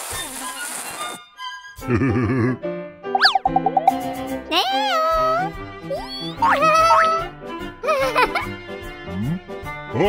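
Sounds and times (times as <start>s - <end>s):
children's cartoon music: 1.2s - 10.0s
glide sound effect: 3.2s - 4.6s
cartoon voice ooh of surprise: 4.5s - 7.3s.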